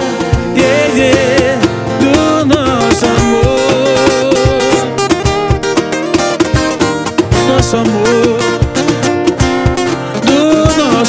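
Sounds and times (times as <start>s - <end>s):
acoustic guitars picking and strumming: 0.0s - 11.0s
cajon beat: 0.0s - 11.0s.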